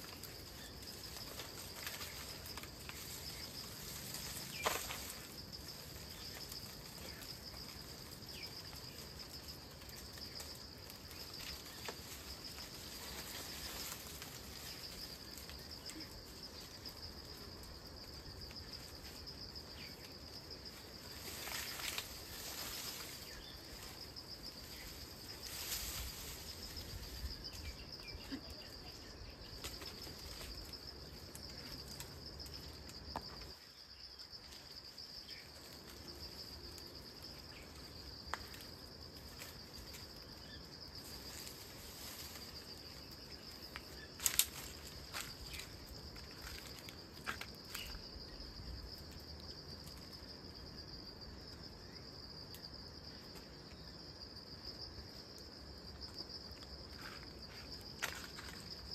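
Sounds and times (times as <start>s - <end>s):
insects droning: 0.0s - 58.9s
rustles: 0.0s - 58.9s.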